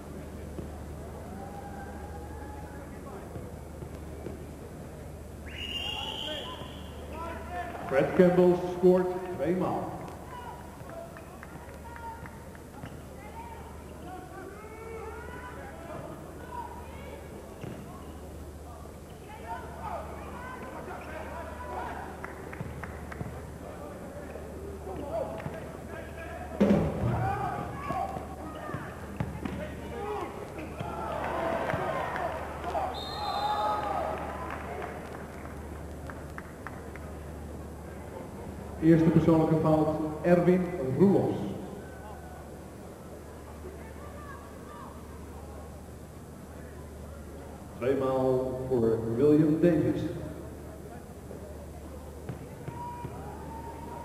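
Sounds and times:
murmur of crowd voices: 0.0s - 54.0s
referee's whistle: 5.4s - 7.1s, 32.9s - 33.9s.

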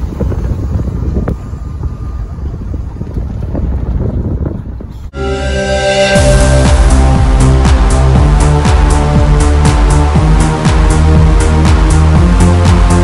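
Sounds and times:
wind buffeting microphone: 0.0s - 5.2s
diesel locomotive rumble: 0.0s - 13.0s
electronic music: 5.2s - 13.0s.

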